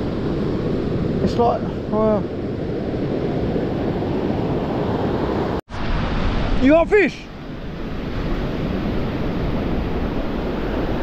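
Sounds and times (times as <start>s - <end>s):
surf breaking on beach: 0.0s - 11.0s
wind on microphone: 0.0s - 11.0s.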